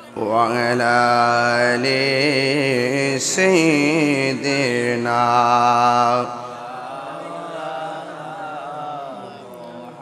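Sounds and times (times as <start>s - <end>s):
chanting voice over loudspeaker: 0.0s - 10.0s
person singing over loudspeaker: 0.0s - 10.0s.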